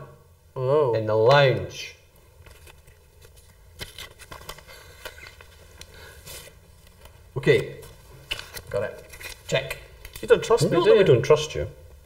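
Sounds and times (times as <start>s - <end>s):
cards clicking and rustling: 2.4s - 7.2s, 7.8s - 10.4s.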